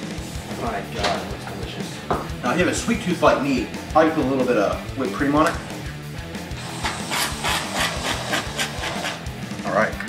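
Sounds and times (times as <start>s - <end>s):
whipped cream can spraying: 6.6s - 9.3s.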